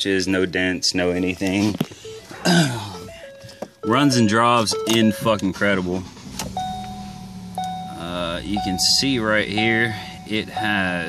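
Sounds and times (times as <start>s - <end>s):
faint steady tones: 1.9s - 11.0s
man coughing: 2.3s - 3.1s.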